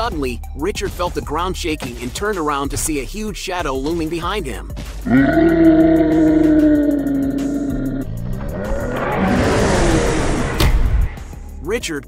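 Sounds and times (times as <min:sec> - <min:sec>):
deep monster roar: 0:05.0 - 0:11.1
rushing sweep: 0:07.7 - 0:11.6
sharp hit: 0:08.0 - 0:11.4.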